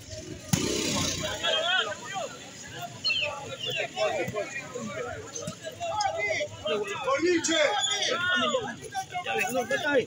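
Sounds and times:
people shouting and talking: 0:00.0 - 0:10.0.

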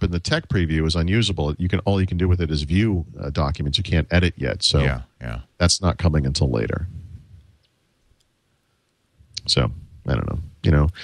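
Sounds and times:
man speaking: 0:00.0 - 0:06.9, 0:09.4 - 0:11.0.

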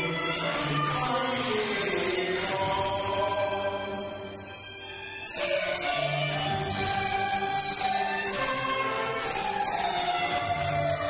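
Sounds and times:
opera singing: 0:00.0 - 0:04.2, 0:05.2 - 0:11.0
instrumental accompaniment: 0:00.0 - 0:11.0.

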